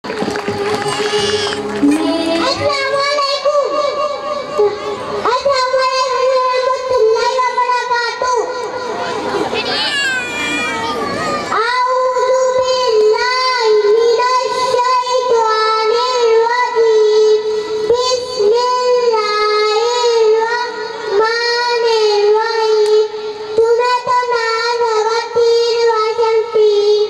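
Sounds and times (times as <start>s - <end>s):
boy singing into a microphone: 0.7s - 9.2s, 10.9s - 27.0s.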